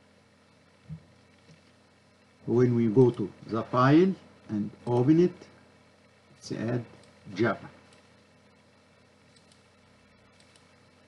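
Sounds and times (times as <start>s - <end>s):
faint computer mouse clicks: 9.3s - 9.7s, 10.3s - 10.7s.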